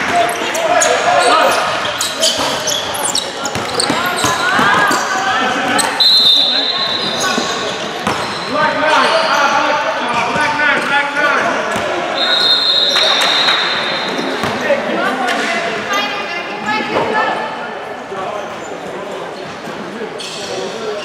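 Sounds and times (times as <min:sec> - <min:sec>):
basketballs bouncing on gym floor: 0:02.2 - 0:05.1, 0:08.0 - 0:08.4, 0:14.2 - 0:14.6
referee's whistle: 0:05.8 - 0:07.4, 0:12.1 - 0:14.4.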